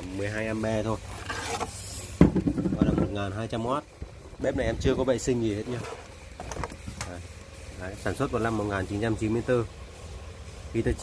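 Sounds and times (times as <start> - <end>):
metal pot scraping on cooktop: 1.0 - 3.0
sudden knock: 2.2 - 3.1.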